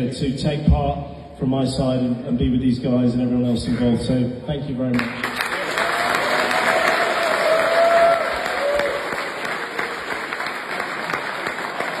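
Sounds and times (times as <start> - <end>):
audience applauding: 5.0 - 12.0.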